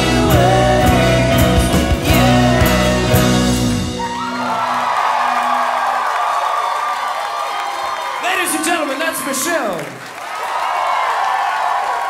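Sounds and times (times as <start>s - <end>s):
audience cheering: 3.8s - 12.0s.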